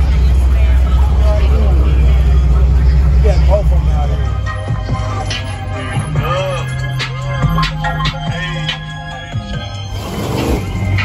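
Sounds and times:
onlookers talking: 0.0s - 7.8s
car engine rumbling: 0.0s - 11.0s.

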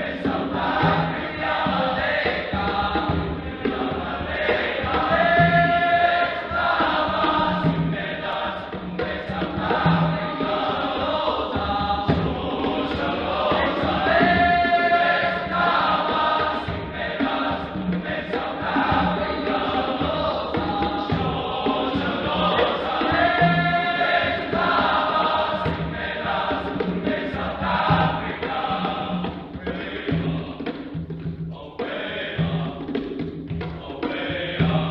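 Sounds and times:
low drum notes: 0.0s - 34.9s
men's choir singing: 0.0s - 34.9s.

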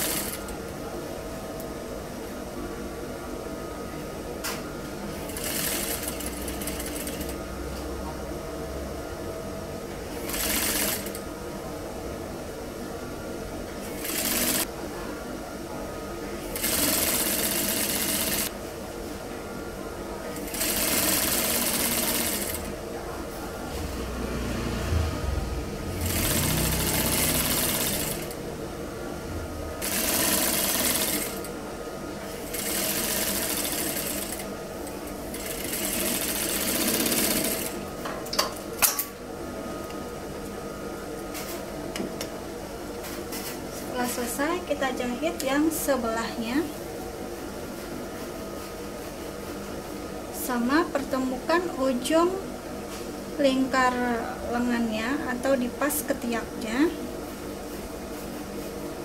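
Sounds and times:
sewing machine stitching: 10.2s - 11.2s, 13.9s - 14.7s, 26.0s - 28.4s, 29.8s - 31.4s, 35.3s - 37.8s.

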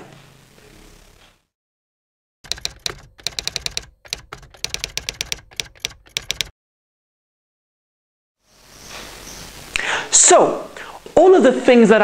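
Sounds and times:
typewriter key clacks: 2.5s - 6.5s.

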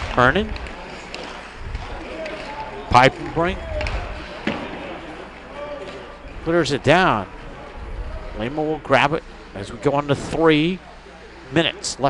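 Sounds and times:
ice rink low noise: 0.0s - 12.0s.

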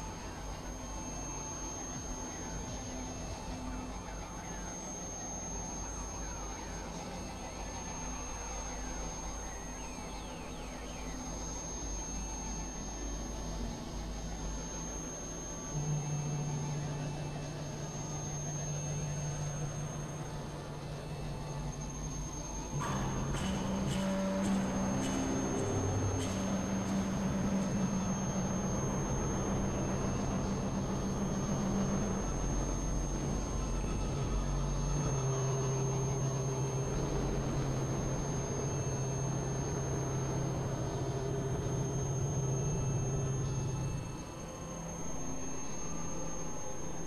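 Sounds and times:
low held synth tone: 0.0s - 47.0s
steady high whine: 0.0s - 47.0s
electronic drone music: 15.8s - 44.4s
loud low drone: 22.7s - 44.1s.

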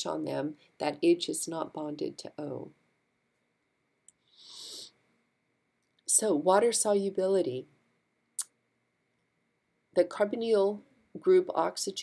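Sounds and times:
woman breathing in: 4.2s - 5.0s
faint mouth click: 8.4s - 8.6s.

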